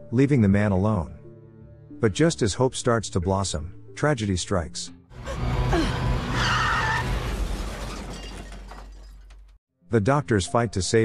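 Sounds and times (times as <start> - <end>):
car crash impact: 6.7 - 9.6
breaking glass: 6.8 - 9.5.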